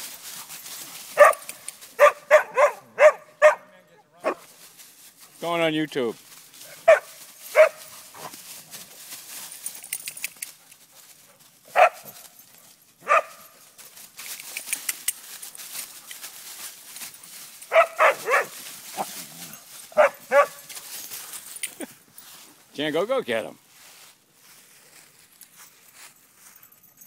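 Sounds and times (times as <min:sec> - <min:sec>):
dog barking: 0:01.2 - 0:04.5, 0:06.7 - 0:07.9, 0:11.7 - 0:12.2, 0:13.0 - 0:13.6, 0:17.7 - 0:19.1, 0:19.9 - 0:20.7.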